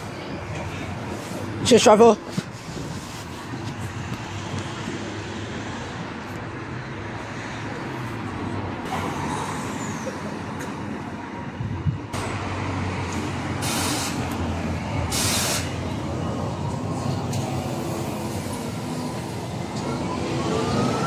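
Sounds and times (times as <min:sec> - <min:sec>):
electric bus humming: 0:03.9 - 0:21.0
air brake hisses: 0:13.6 - 0:14.3, 0:15.1 - 0:15.8.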